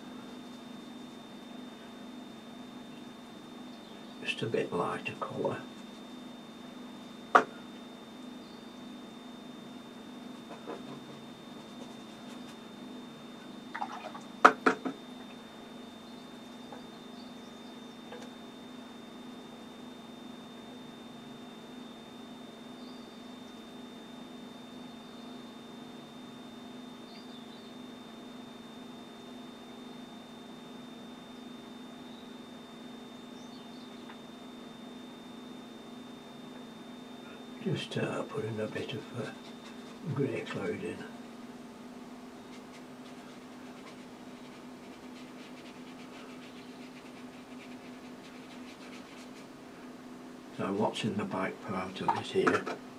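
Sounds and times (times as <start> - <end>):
electrical hum with high whine: 0.0 - 52.9.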